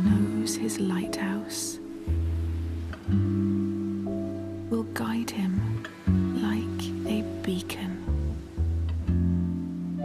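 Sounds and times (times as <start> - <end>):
gentle lullaby music: 0.0 - 10.0.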